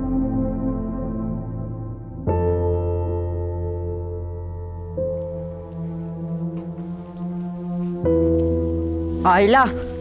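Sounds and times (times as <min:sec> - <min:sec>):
low droning film score chord: 0:00.0 - 0:09.3.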